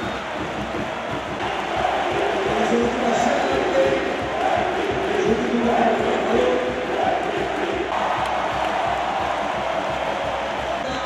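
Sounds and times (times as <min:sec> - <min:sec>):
crowd cheering: 0:00.0 - 0:11.0
crowd singing and chanting: 0:00.0 - 0:11.0.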